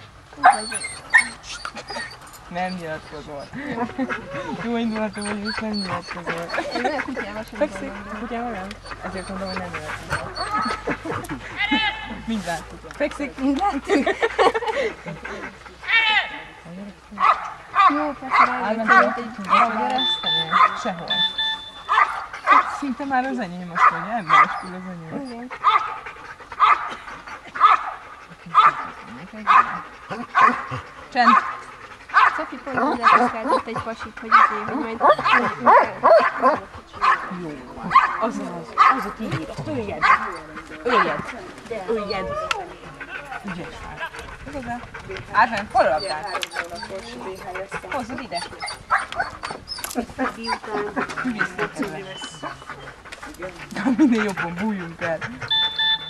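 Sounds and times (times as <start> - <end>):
dog vocalizing: 0.0 - 16.1, 17.1 - 56.0
people talking: 0.4 - 15.6, 16.7 - 21.4, 22.5 - 25.6, 28.3 - 31.5, 32.3 - 49.0, 49.9 - 55.5
dog barking: 17.2 - 22.8, 23.8 - 24.6, 25.6 - 26.0, 26.6 - 27.0, 27.6 - 28.0, 28.6 - 33.6, 34.3 - 39.2, 39.9 - 41.3, 48.7 - 49.4, 55.5 - 56.0.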